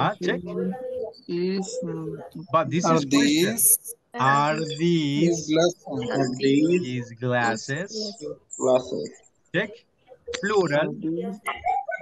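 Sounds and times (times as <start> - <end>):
man humming low vowels: 0.0 - 0.6, 2.4 - 3.6, 4.2 - 8.1.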